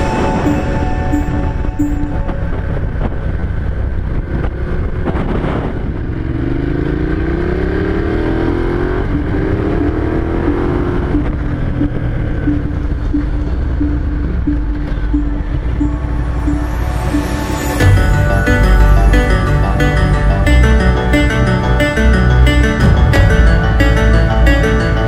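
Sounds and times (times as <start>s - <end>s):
road and wind noise: 0.0s - 25.0s
motorcycle engine accelerating: 2.6s - 25.0s.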